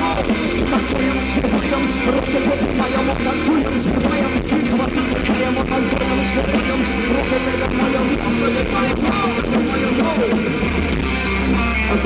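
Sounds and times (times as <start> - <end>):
electric guitars: 0.0 - 12.0
live rock band playing: 0.0 - 12.0.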